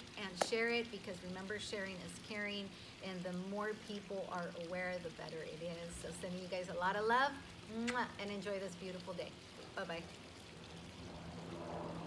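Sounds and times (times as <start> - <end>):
low hum: 9.6 - 12.0.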